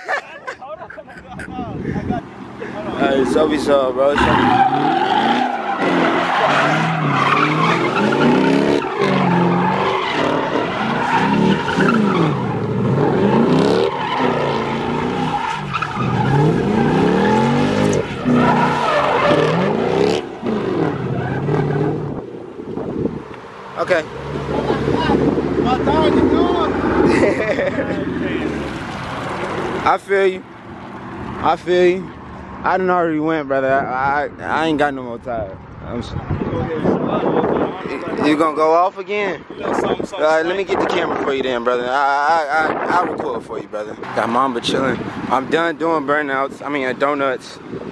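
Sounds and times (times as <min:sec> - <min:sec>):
tyres squealing on asphalt: 0:00.0 - 0:32.8
car engine revving: 0:02.2 - 0:30.0.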